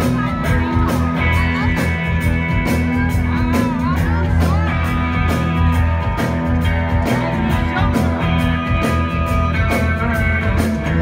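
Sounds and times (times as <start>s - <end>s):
distorted electric guitars: 0.0s - 11.0s
heavy bass: 0.0s - 11.0s
keyboards: 0.0s - 11.0s
steady drum beat: 0.0s - 11.0s.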